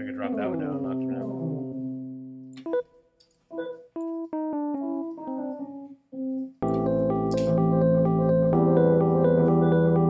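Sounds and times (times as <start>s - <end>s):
electric piano chord: 3.6s - 10.0s.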